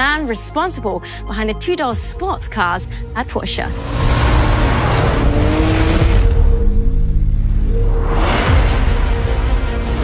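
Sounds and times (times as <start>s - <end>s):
music: 0.0s - 10.0s
car engine: 3.7s - 9.6s.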